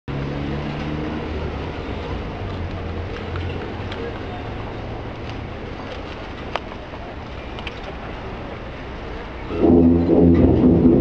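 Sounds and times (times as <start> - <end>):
tubas and euphoniums low notes: 9.5 - 11.0.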